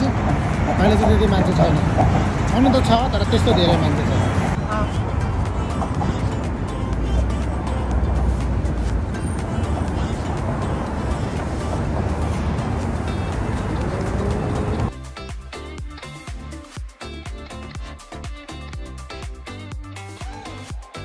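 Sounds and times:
car traffic noise: 0.0s - 15.1s
background music: 0.0s - 21.0s.

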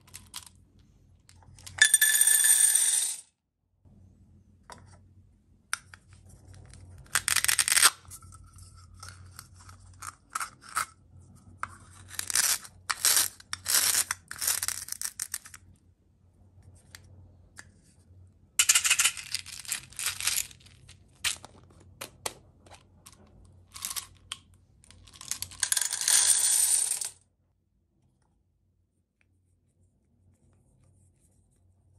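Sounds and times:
beads clattering into metal tin: 1.6s - 3.2s, 18.6s - 21.5s, 23.7s - 24.2s, 24.9s - 27.2s.

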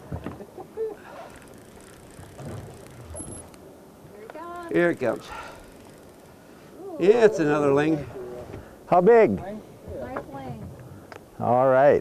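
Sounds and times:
wind and water: 0.0s - 12.0s.

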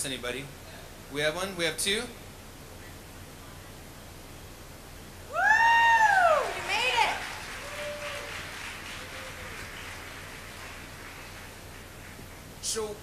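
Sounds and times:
faint crowd noise: 5.2s - 13.0s
person whooping loudly: 5.3s - 6.7s, 7.6s - 8.4s, 9.0s - 9.7s.

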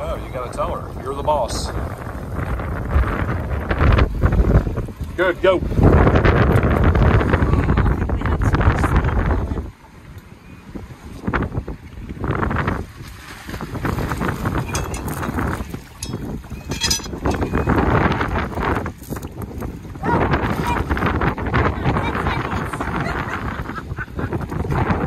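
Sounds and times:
wind buffeting microphone: 0.0s - 25.0s
water splashing: 10.8s - 25.0s.

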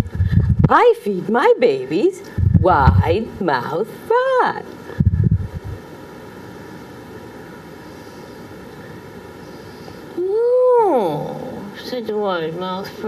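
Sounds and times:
room hiss: 0.0s - 13.0s
woman vocalizing oooh: 10.2s - 11.7s.

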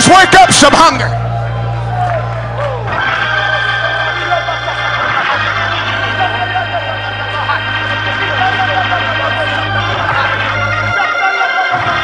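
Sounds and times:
congregation shouting and praising: 0.0s - 12.0s
loud music: 0.0s - 12.0s.

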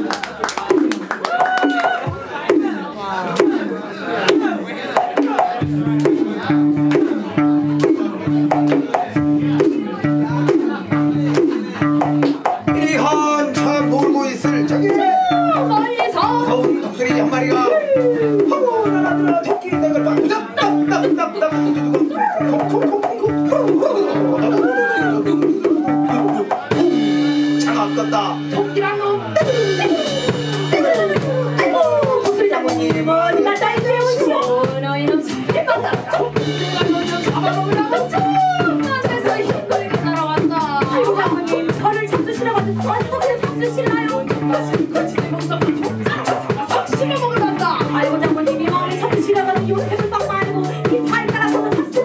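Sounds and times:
drum kit: 0.0s - 52.0s
bass line pulsing: 5.5s - 52.0s
voices singing: 29.1s - 52.0s.

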